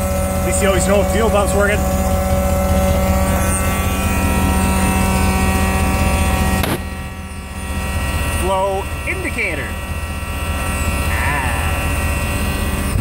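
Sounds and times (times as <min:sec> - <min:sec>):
electric fuel pump buzzing: 0:00.0 - 0:13.0
engine running: 0:00.0 - 0:13.0.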